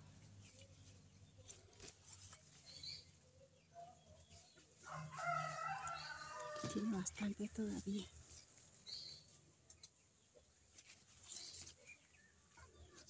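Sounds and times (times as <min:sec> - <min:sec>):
faint outdoor background: 0:00.0 - 0:13.0
rooster crowing: 0:04.9 - 0:06.9.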